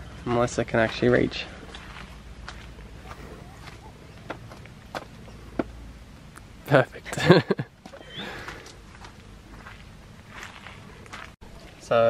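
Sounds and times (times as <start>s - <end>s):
footsteps on grass: 1.7s - 5.2s, 8.8s - 11.8s.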